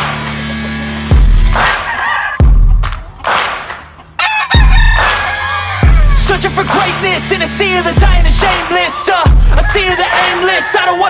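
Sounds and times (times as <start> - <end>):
hip-hop music with deep bass: 0.0 - 11.0
rooster crowing: 1.5 - 3.2, 4.2 - 6.4, 8.5 - 11.0.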